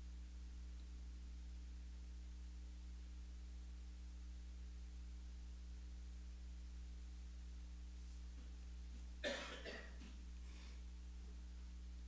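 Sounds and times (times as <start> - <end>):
low electrical hum: 0.0 - 12.0
person coughing: 9.2 - 10.1.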